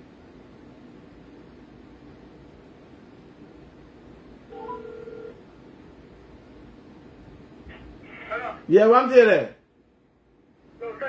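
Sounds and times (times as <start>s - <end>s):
electronic telephone tone: 4.5s - 5.4s.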